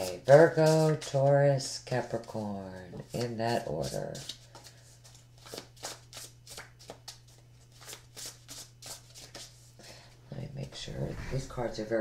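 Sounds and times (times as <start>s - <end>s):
cards being shuffled: 0.0s - 9.6s.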